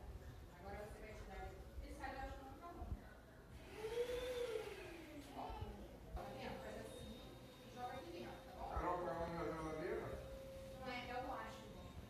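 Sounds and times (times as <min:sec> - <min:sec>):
motor whine: 0:03.6 - 0:05.8.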